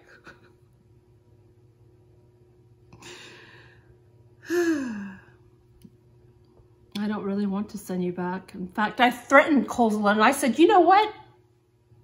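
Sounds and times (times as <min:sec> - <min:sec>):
woman breathing: 0:03.0 - 0:05.5
woman sighing: 0:04.4 - 0:05.4.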